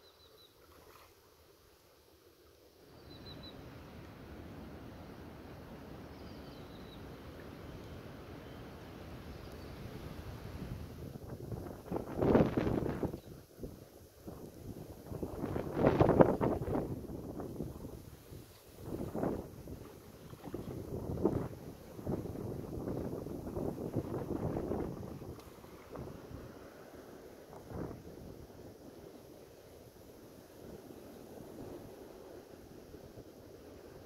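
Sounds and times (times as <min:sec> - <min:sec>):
wind buffeting microphone: 0:10.4 - 0:29.2.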